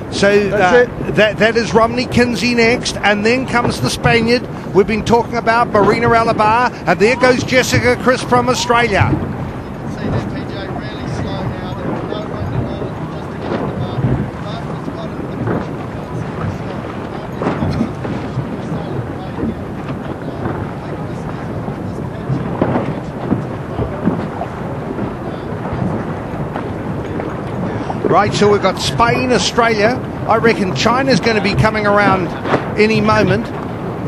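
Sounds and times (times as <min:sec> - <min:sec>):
water washing: 0:00.0 - 0:34.0
wind buffeting microphone: 0:00.0 - 0:34.0.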